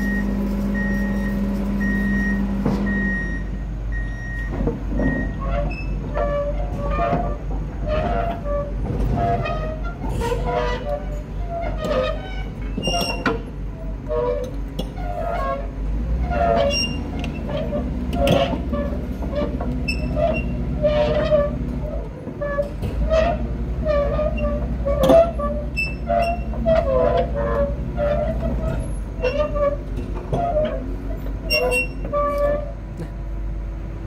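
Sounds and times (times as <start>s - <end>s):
diesel engine running: 0.0s - 34.0s.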